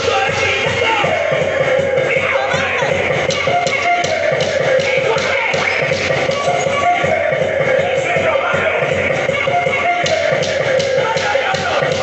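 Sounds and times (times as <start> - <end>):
upbeat dance music: 0.0 - 12.0.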